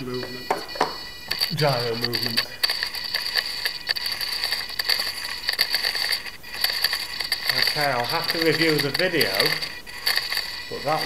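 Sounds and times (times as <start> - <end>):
servos buzzing with high whine: 0.0 - 11.0
quick irregular servo ticks: 0.6 - 11.0.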